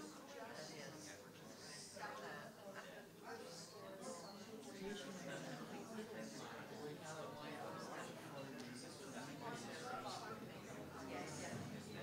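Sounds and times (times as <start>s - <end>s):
faint indistinct voices talking: 0.0s - 12.0s.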